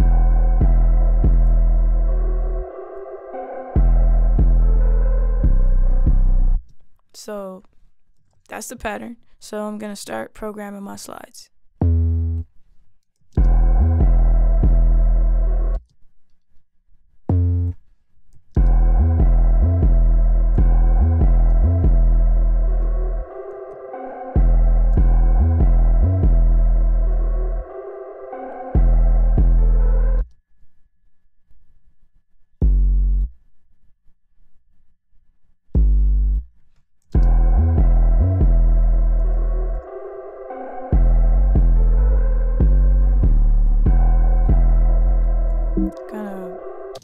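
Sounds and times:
distorted sub-bass notes: 0.0 - 2.7, 3.8 - 6.6, 11.8 - 12.4, 13.4 - 15.8, 18.6 - 23.3, 24.4 - 27.7, 28.8 - 30.3, 32.6 - 33.4, 35.8 - 36.5, 37.2 - 39.8, 41.0 - 46.1.

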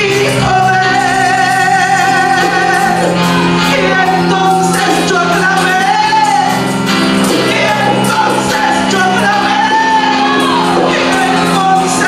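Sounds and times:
instrumental accompaniment: 0.0 - 12.0
woman singing a hymn: 7.3 - 12.0.

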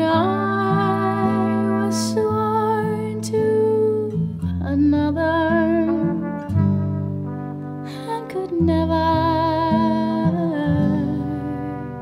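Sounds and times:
woman singing wordless note: 0.0 - 6.4, 7.9 - 12.0
acoustic guitar chords: 0.0 - 12.0.

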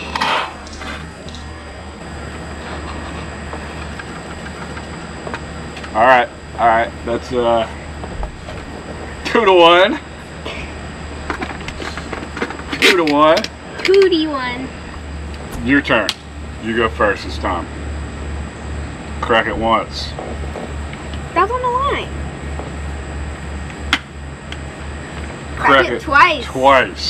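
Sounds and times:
steady low hum: 0.0 - 27.0
man speaking: 25.6 - 27.0.

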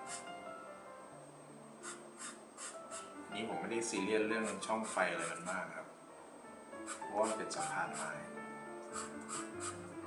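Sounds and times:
pencil scratching on paper: 0.0 - 0.3, 1.8 - 3.1, 4.4 - 5.6, 6.9 - 8.2, 9.0 - 9.8
faint background music: 0.0 - 10.0.

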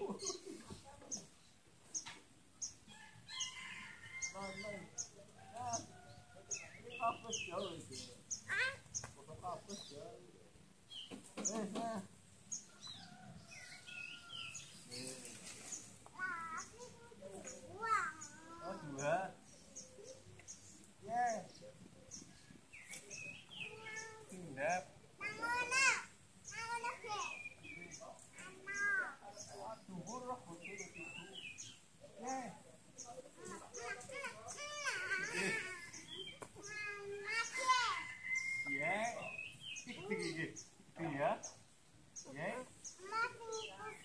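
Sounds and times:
child talking and calling out: 8.5 - 8.9, 16.2 - 19.0, 23.6 - 24.3, 25.2 - 27.5, 28.4 - 29.2, 33.3 - 38.0, 43.0 - 44.0
small child crying: 34.4 - 36.1.

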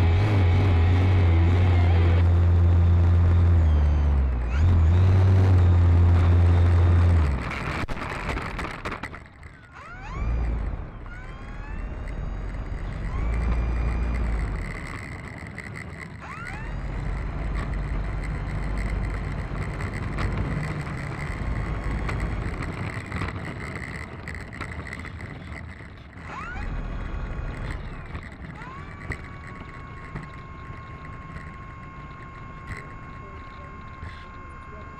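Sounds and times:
low rumble: 0.0 - 8.0
model plane motor whirring: 0.0 - 34.9.

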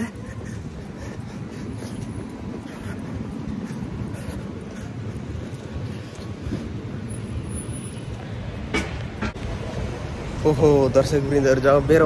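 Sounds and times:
passing traffic rumble: 0.0 - 12.0.

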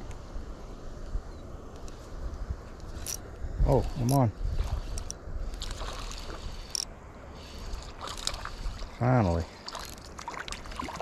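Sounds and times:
water splashing and sloshing: 2.9 - 11.0.

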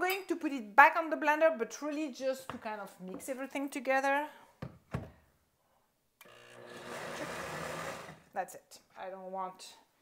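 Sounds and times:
blender motor running: 6.2 - 8.3.

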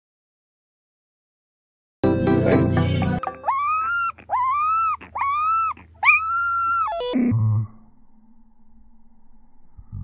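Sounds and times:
puppy howling: 3.2 - 7.2.

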